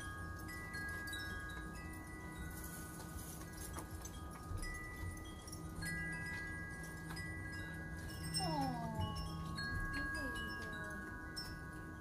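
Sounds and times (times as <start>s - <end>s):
wind chimes ringing: 0.0s - 12.0s.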